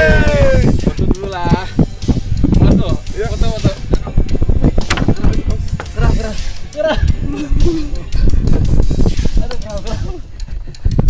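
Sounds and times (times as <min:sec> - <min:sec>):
background music with drum beat: 0:00.0 - 0:11.0.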